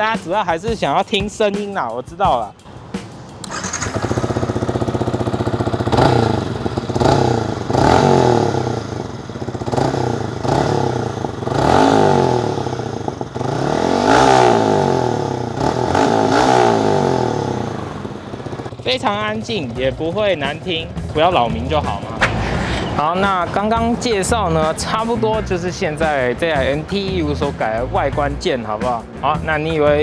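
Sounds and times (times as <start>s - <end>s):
motorcycle engine revving: 2.8s - 22.2s.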